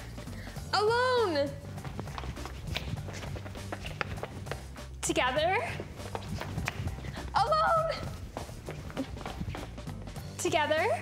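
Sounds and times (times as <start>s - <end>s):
background music with low bass: 0.0s - 11.0s
footsteps on wooden floor: 1.6s - 4.9s, 5.6s - 10.4s.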